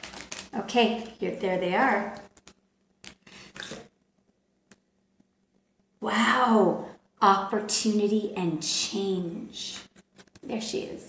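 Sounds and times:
card rustling: 0.0s - 0.6s, 2.2s - 3.8s.

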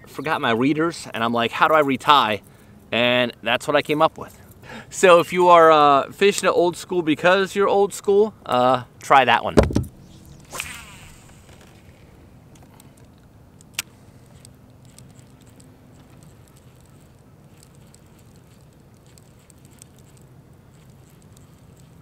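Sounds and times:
fishing line whirring off reel: 9.8s - 12.7s, 13.7s - 22.0s
reel ticking: 13.7s - 22.0s.

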